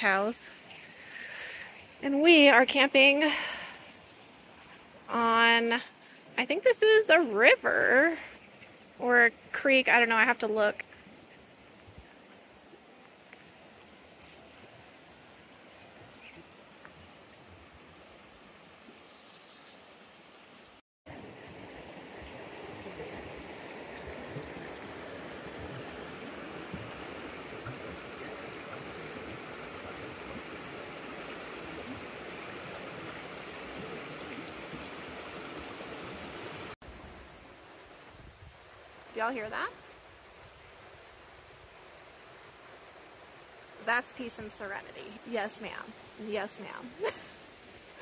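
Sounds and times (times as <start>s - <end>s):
creek running over rocks: 0.0s - 48.0s.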